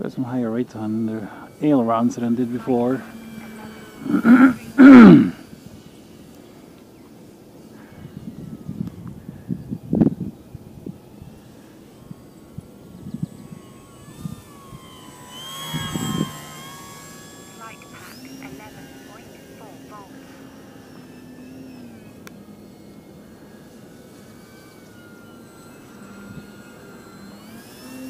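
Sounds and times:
model plane motor whining: 0.0 - 28.0
man coughing: 4.0 - 5.4.

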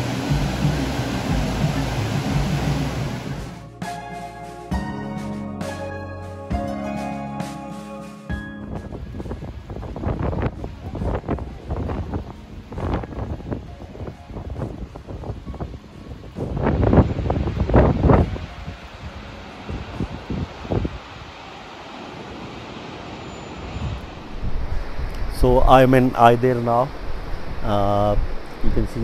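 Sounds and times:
wind buffeting microphone: 8.6 - 21.6, 23.7 - 29.0.

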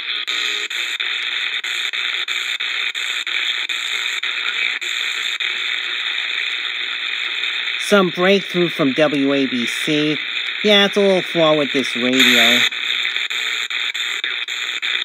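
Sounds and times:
faint radio station audio: 3.3 - 12.9
shortwave radio static hiss: 3.3 - 15.0.

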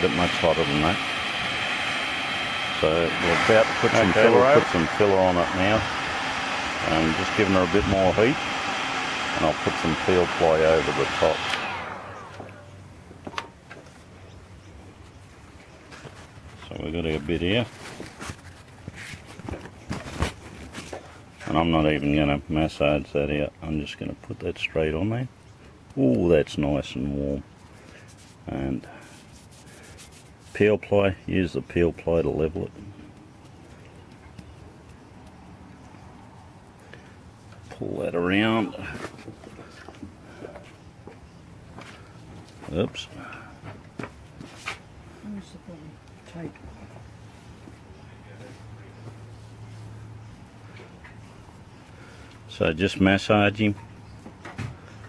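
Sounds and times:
heat gun fan whine: 0.0 - 13.9, 31.9 - 45.4.

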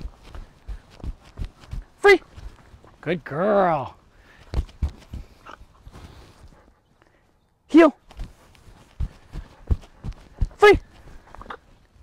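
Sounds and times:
footsteps on grass: 0.0 - 3.0, 4.2 - 6.6, 8.0 - 11.7.

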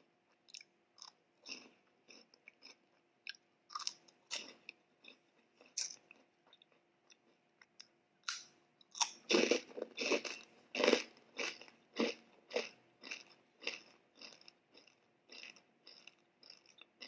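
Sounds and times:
crunchy snack chewing: 0.5 - 7.4, 8.2 - 17.0.

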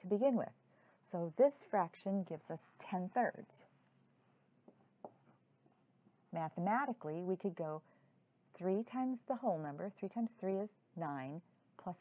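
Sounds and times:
marker writing on whiteboard: 4.6 - 6.3.

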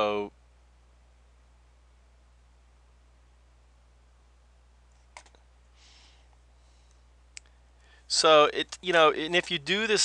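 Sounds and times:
computer mouse clicks: 5.0 - 5.4.

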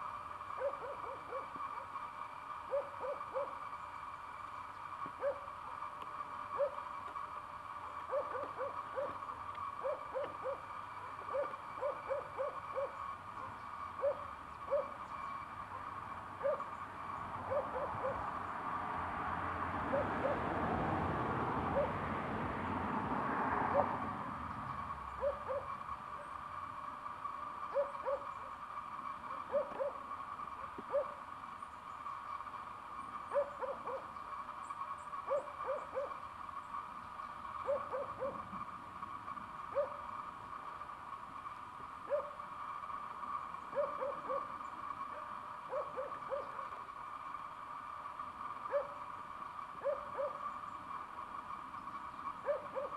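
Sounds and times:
steady high-pitched hum: 0.0 - 52.9
bird hooting: 0.4 - 4.1, 5.2 - 7.0, 7.9 - 18.4, 19.9 - 20.5, 21.7 - 22.0, 24.7 - 26.5, 27.6 - 32.1, 33.0 - 36.3, 37.6 - 38.7, 39.6 - 40.2, 42.0 - 42.5, 43.6 - 46.8, 48.6 - 49.2, 49.8 - 50.9, 52.2 - 52.9.

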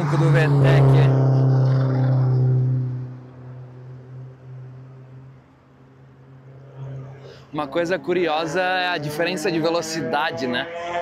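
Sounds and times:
race car engine driving past: 0.0 - 11.0.

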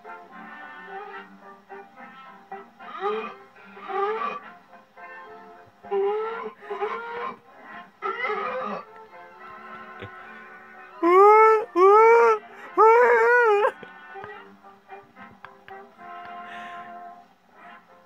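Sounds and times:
film background music: 0.0 - 18.0
loud rising wailing calls: 8.0 - 8.9, 11.0 - 13.8.

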